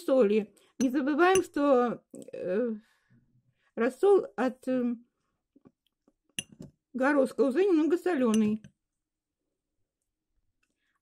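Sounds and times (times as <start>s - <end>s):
metal spoon clinking glass bowl: 6.4s - 6.7s, 8.3s - 8.7s.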